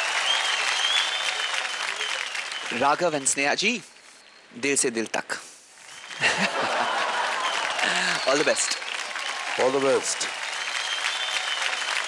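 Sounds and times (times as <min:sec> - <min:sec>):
audience applauding: 0:00.0 - 0:03.6, 0:05.8 - 0:12.0.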